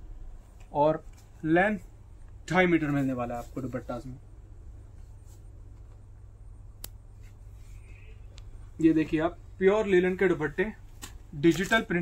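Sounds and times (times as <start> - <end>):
low steady hum: 0.0 - 12.0
cloth being handled: 0.3 - 4.2, 4.8 - 6.2.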